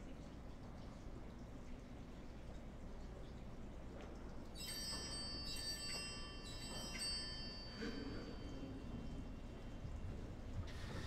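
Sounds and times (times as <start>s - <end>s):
bell ringing: 4.6s - 9.6s.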